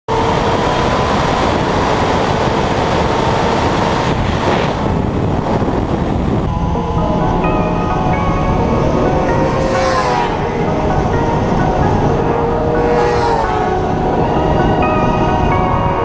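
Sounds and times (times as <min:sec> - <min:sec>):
motorcycle engine at high revs: 0:00.1 - 0:05.6
wind rushing noise: 0:00.1 - 0:16.0
music: 0:05.1 - 0:16.0.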